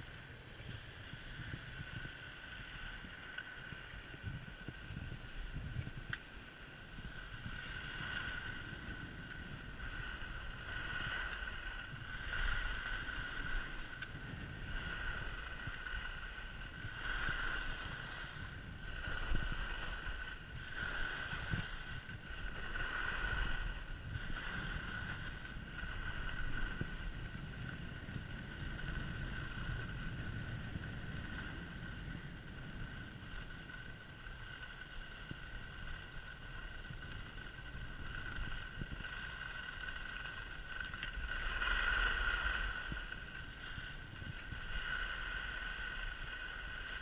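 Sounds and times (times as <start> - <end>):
skis scraping over snow: 0.0 - 47.0
wind buffeting microphone: 0.0 - 47.0.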